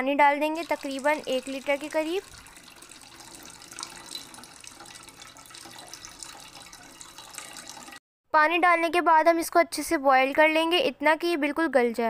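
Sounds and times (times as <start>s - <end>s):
water pouring onto leafy greens: 0.5s - 8.0s.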